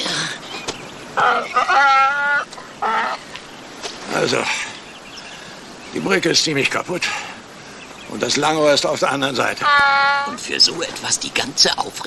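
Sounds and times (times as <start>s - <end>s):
donkey braying: 1.2s - 3.4s, 9.4s - 10.5s.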